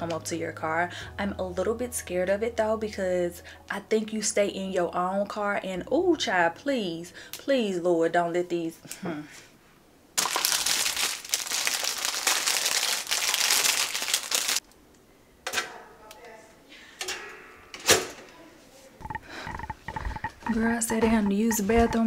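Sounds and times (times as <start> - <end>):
plastic bag crinkling: 10.2 - 14.6.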